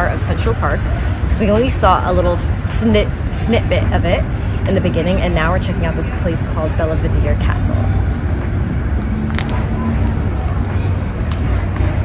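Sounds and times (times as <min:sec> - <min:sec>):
faint voices: 0:00.0 - 0:12.0
low outdoor rumble: 0:00.0 - 0:12.0.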